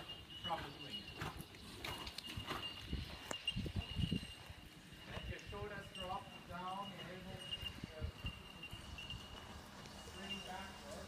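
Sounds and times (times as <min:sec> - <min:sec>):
horse hooves thudding on sand: 0:00.0 - 0:11.0.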